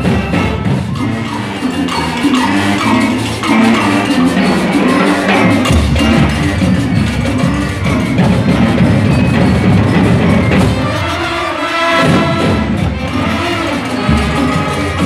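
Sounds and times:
marching drum line: 0:00.0 - 0:15.0
brass horns holding chords: 0:10.5 - 0:15.0.

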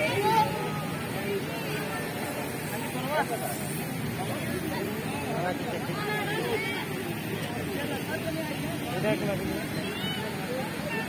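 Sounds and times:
outdoor murmur: 0:00.0 - 0:11.0
people talking: 0:00.0 - 0:11.0.

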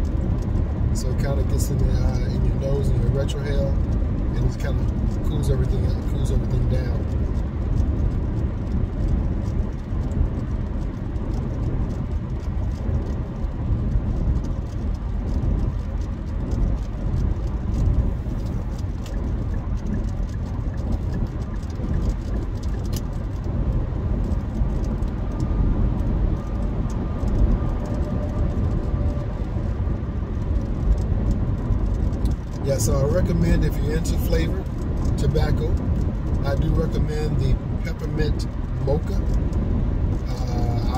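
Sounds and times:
road and tyre rumble in car: 0:00.0 - 0:40.9.

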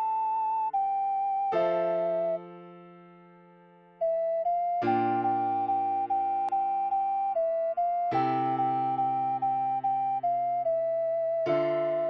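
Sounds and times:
ocarina melody: 0:00.0 - 0:02.6, 0:04.0 - 0:12.0
sustained piano chords: 0:00.0 - 0:12.0.

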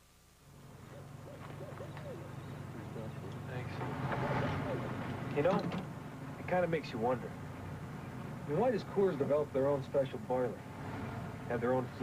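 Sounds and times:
low steady hum: 0:00.0 - 0:12.0
owl hooting: 0:00.7 - 0:05.4.

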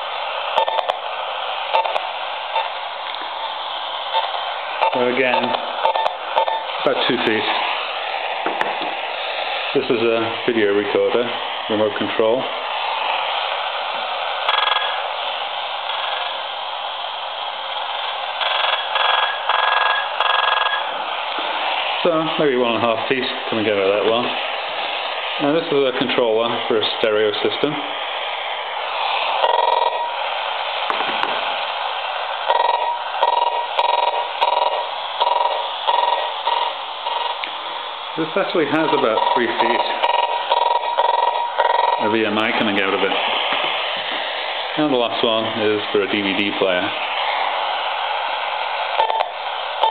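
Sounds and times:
radio static hiss: 0:00.0 - 0:49.9
buzzing bursts of interference: 0:01.6 - 0:02.8, 0:28.9 - 0:30.2, 0:32.4 - 0:37.5, 0:38.2 - 0:43.6.

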